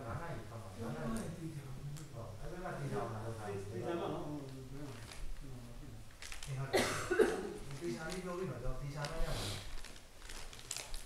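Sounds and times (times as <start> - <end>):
person coughing: 6.7 - 7.6.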